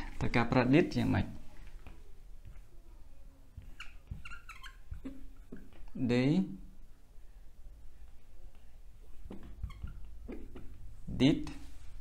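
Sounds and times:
whiteboard marker squeaking: 3.6 - 5.9, 9.1 - 11.2.

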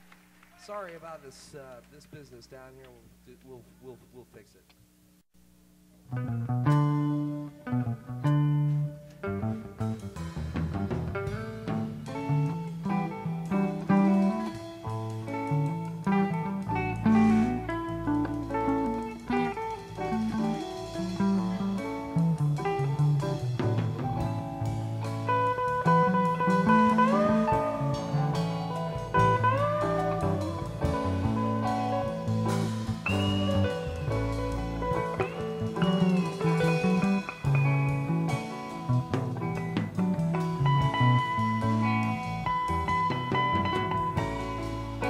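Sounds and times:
electric guitar note bends: 6.1 - 45.0
live rock band playing: 6.1 - 45.0.

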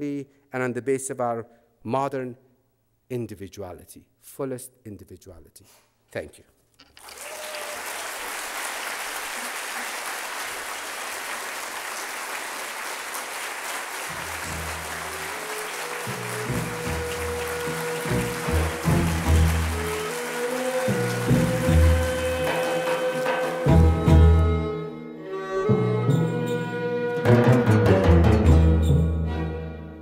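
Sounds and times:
audience applauding: 7.0 - 24.0.

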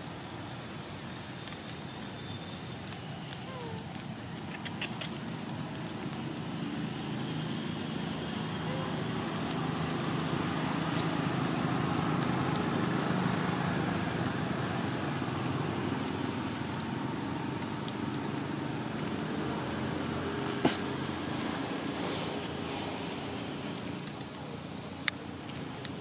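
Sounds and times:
vehicle engine droning: 5.2 - 26.0.

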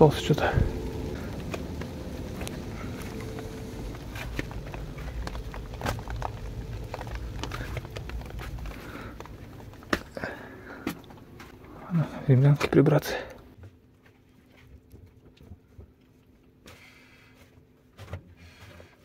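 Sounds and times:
footsteps on bare earth: 0.0 - 11.8
handling rumble: 0.0 - 13.5.

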